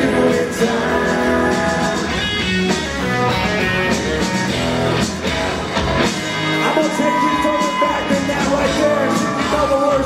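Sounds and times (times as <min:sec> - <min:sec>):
drums keeping a beat: 0:00.0 - 0:10.0
electric guitar: 0:00.0 - 0:10.0.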